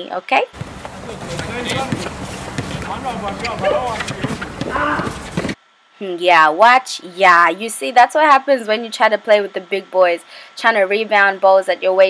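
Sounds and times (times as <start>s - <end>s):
noisy background: 0.0s - 12.0s
knocks and scuffs on hard court: 0.6s - 5.6s
players calling out: 0.6s - 5.6s.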